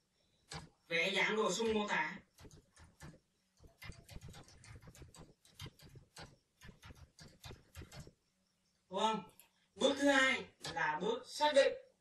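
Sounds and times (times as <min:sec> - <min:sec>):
keyboard typing: 0:00.4 - 0:08.2.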